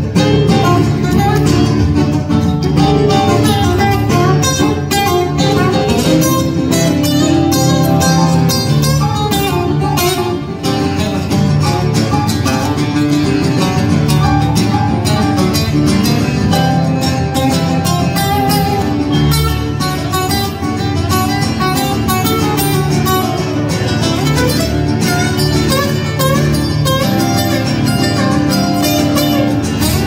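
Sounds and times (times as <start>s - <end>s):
picked guitar lead with slides: 0.0s - 30.0s
strummed acoustic guitar: 0.0s - 30.0s.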